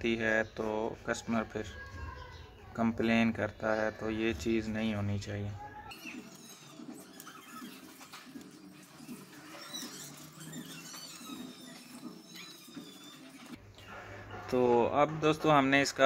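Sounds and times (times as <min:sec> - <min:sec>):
squeaky animal chirps: 0:05.8 - 0:13.6.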